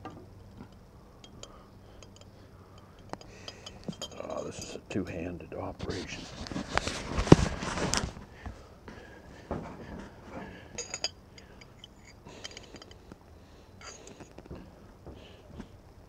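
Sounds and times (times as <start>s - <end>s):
fork clinking against glass jar: 0.6s - 4.8s, 10.8s - 13.0s.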